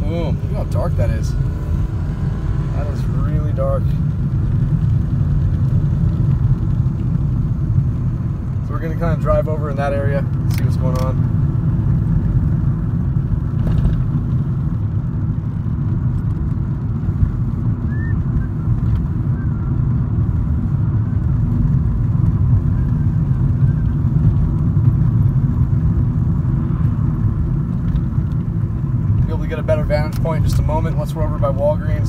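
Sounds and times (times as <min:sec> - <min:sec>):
car engine and tyres rumbling: 0:00.0 - 0:32.0.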